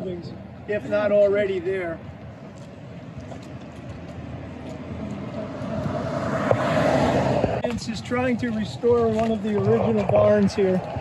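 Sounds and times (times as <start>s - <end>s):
vehicle approaching: 2.4s - 11.0s.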